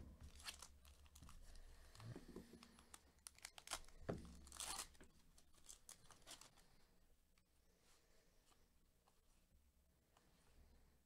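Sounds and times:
card pack wrapper crinkling: 0.3 - 1.2, 3.2 - 6.6
wrapper tearing: 0.3 - 1.2, 3.2 - 6.6.

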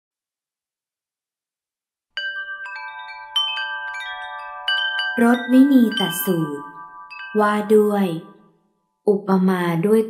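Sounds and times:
chimes ringing: 2.2 - 9.0
person reading aloud: 5.2 - 6.8, 7.4 - 8.4, 9.1 - 10.0.

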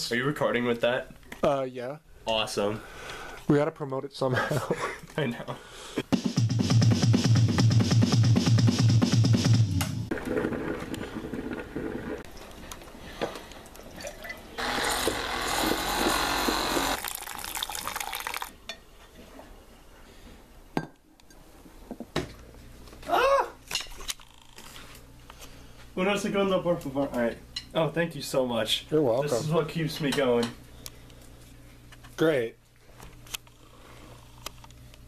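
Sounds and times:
music with bass pulse: 6.2 - 10.1
coffee pouring into a mug: 16.9 - 18.6.

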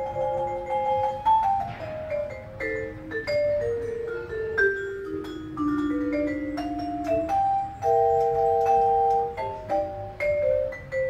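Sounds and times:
vibraphone notes: 0.0 - 11.0.

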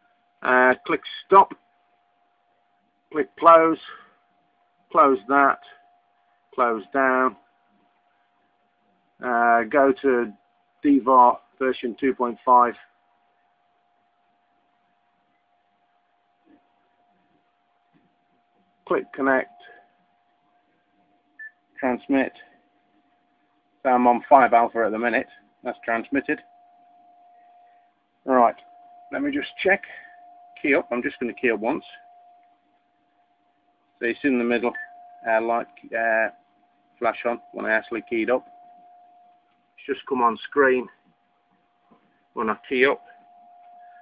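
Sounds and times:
faint high hum: 0.0 - 44.0
faint steady tone: 0.0 - 44.0.

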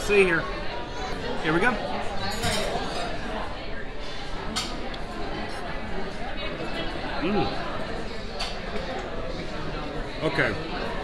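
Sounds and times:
chatter of many diners: 0.0 - 11.0.

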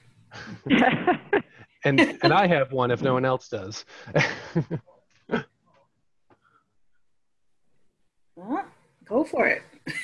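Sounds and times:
person laughing: 0.4 - 2.5, 4.2 - 5.4.

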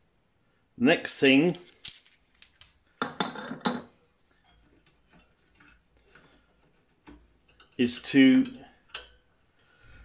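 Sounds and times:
steel pieces clinking: 1.2 - 3.1.

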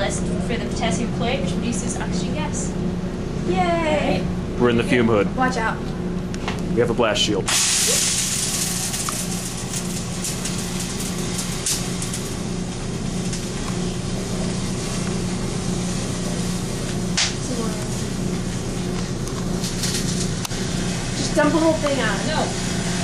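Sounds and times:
steady low hum: 0.0 - 23.0
chemicals sizzling in a frying pan: 7.5 - 23.0.

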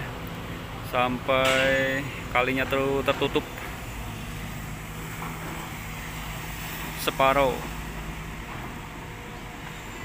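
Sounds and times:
diesel excavator engine running: 0.0 - 10.0.

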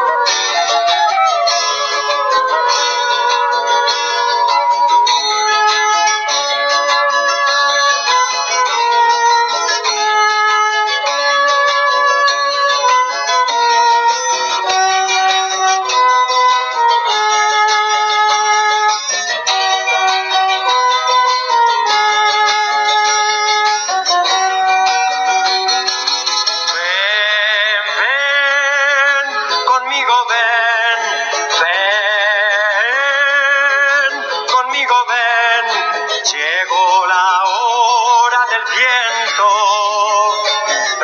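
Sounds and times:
plucked-string melody: 0.0 - 41.0
person singing with vibrato: 23.8 - 41.0.

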